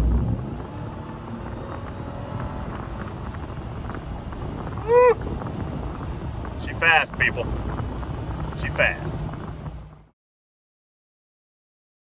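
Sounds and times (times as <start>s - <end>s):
engine accelerating: 0.0s - 10.1s
wind noise: 0.0s - 10.1s
road noise: 0.0s - 10.2s.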